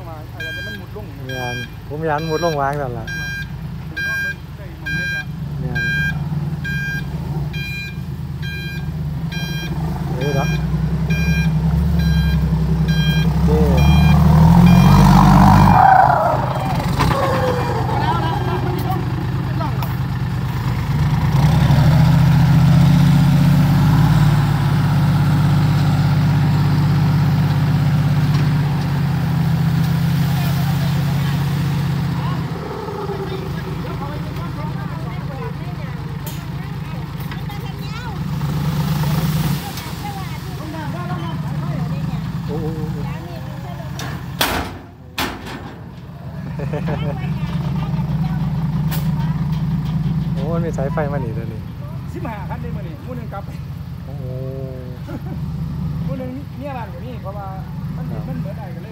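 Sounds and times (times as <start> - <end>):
dump truck diesel engine: 0.0 - 58.9
reversing alarm beeping: 0.4 - 17.9.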